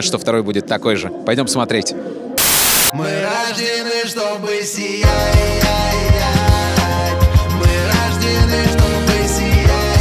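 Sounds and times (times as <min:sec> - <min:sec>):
burst of static noise: 0:02.4 - 0:03.0
background music: 0:02.9 - 0:10.0.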